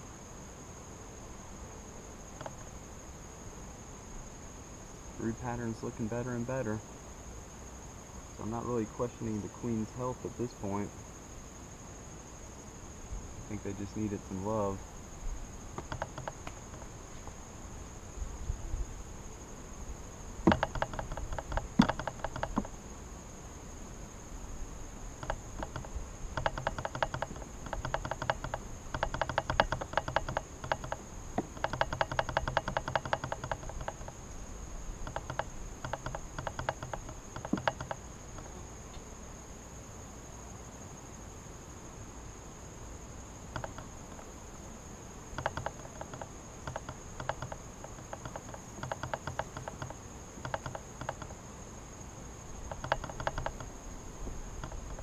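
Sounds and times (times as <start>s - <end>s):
high-pitched insect trill: 0.0s - 55.0s
honeybees buzzing: 0.0s - 55.0s
rapid rattling flutter: 15.8s - 17.4s, 20.5s - 22.8s, 25.2s - 34.2s, 54.6s - 55.0s.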